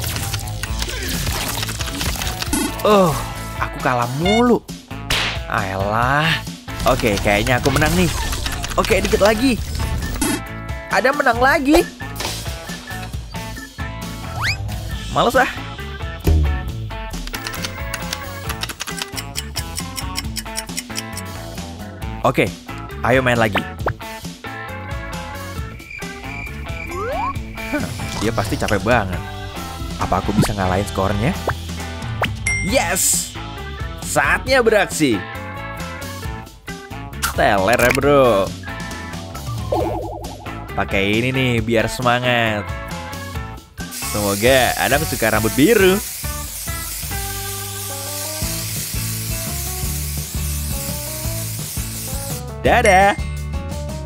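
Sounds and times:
light background music: 0:00.0 - 0:54.0
aerosol spray hissing: 0:43.8 - 0:52.5.

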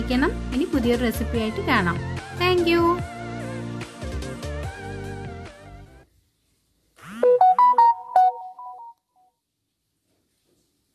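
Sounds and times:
electronic jingle of beeping tones: 0:07.2 - 0:09.0.

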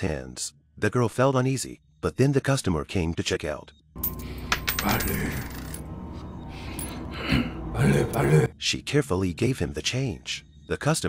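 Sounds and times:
coins clinking: 0:04.0 - 0:07.1
low steady drone: 0:04.0 - 0:08.5.

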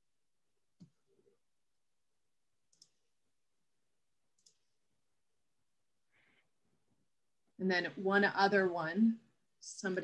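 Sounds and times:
computer mouse clicks: 0:02.7 - 0:03.1, 0:04.3 - 0:04.8.

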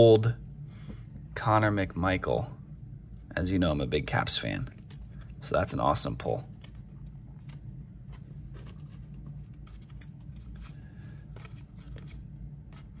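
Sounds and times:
steady low hum: 0:00.0 - 0:13.0
trading cards sliding and ticking: 0:04.6 - 0:13.0.

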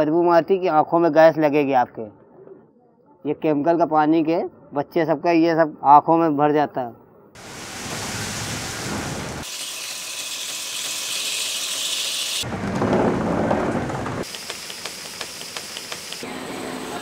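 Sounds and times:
rushing noise: 0:07.4 - 0:09.5
water splashing from drum: 0:07.4 - 0:09.5
machine hiss: 0:07.4 - 0:12.4, 0:14.2 - 0:16.3.

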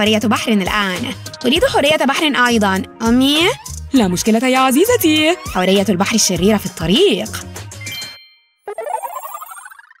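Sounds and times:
rising chime jingle: 0:07.8 - 0:10.0.

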